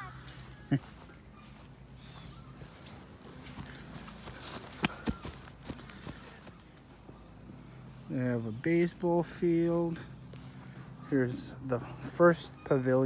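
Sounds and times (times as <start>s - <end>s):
footsteps on grass: 0.0s - 13.0s.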